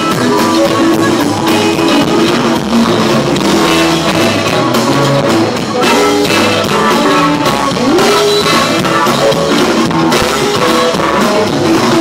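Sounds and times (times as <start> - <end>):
drums: 0.0 - 12.0
electric guitars: 0.0 - 12.0.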